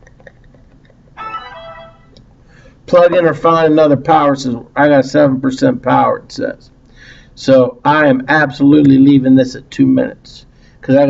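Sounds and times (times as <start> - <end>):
electronic alert chime: 1.2 - 2.2.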